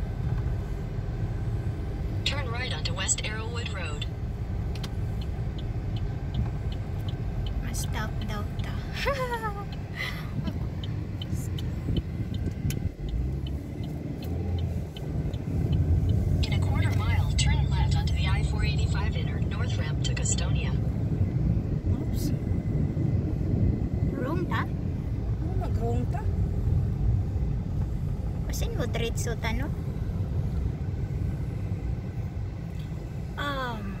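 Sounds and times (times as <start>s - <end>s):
car engine and road rumble: 0.0s - 34.0s
light regular ticking: 0.2s - 21.5s.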